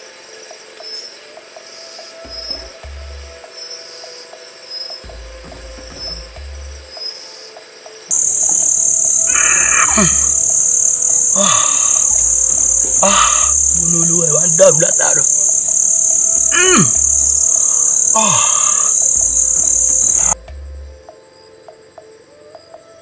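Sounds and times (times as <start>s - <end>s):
crickets chirring: 0.0s - 23.0s
film music with pulsing bass: 2.3s - 3.5s, 5.0s - 7.1s, 8.1s - 21.9s
man groaning: 8.1s - 20.4s.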